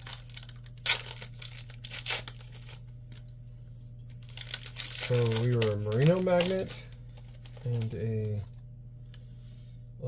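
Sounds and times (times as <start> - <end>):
wrapper being torn and crinkled: 0.0 - 3.4, 4.0 - 8.5.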